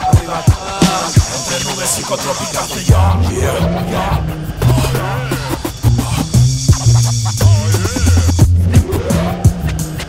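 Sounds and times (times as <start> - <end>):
drum hits: 0.0 - 1.6
instrumental hip hop beat: 0.0 - 10.0
turntable scratch glide: 0.0 - 10.0
deep bass line: 2.9 - 10.0.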